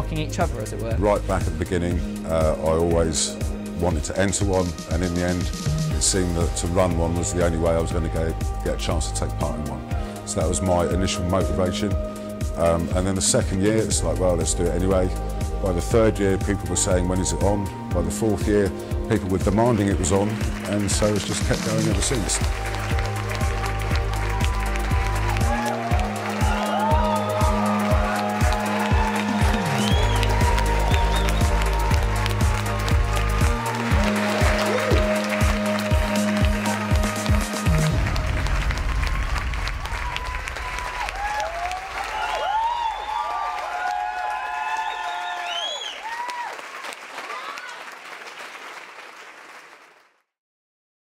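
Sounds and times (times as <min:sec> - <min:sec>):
music with steady beat and bass: 0:03.2 - 0:12.6, 0:13.2 - 0:39.4
applause: 0:19.6 - 0:50.4.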